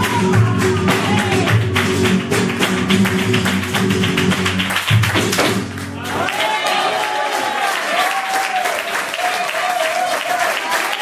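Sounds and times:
flamenco guitar: 0:00.0 - 0:06.3
rhythmic hand clapping: 0:00.0 - 0:11.0.

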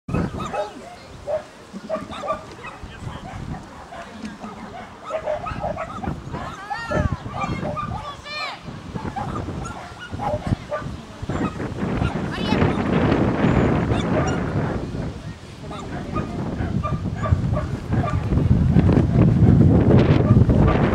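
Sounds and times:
small dog yapping: 0:00.1 - 0:08.1, 0:09.0 - 0:12.8
person calling: 0:04.0 - 0:05.1.

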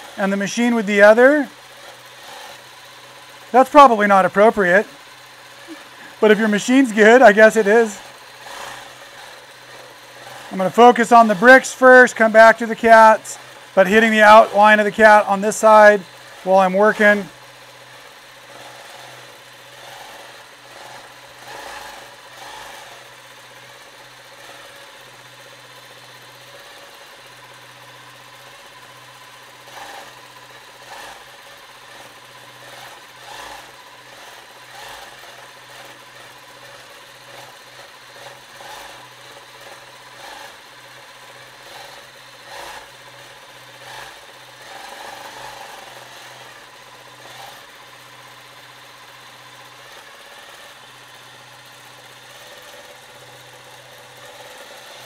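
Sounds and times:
quilting machine stitching: 0:00.0 - 0:55.0.

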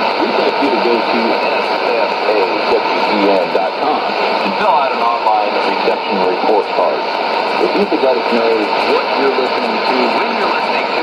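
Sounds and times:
announcer's voice on radio: 0:00.0 - 0:11.0
radio static hiss: 0:00.0 - 0:11.0.

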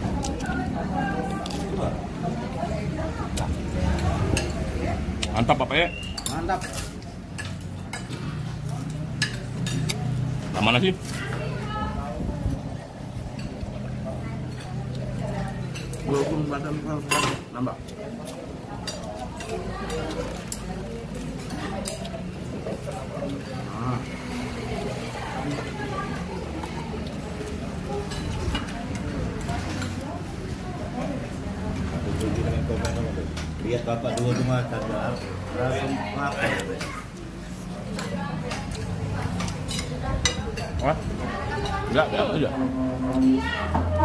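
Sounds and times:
background chatter: 0:00.0 - 0:44.0
murmur of voices: 0:00.0 - 0:44.0.

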